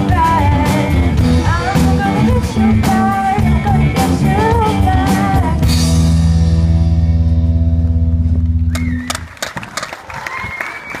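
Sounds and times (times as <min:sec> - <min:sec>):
rock band holding chord: 0:00.0 - 0:08.5
scattered clapping: 0:08.7 - 0:11.0.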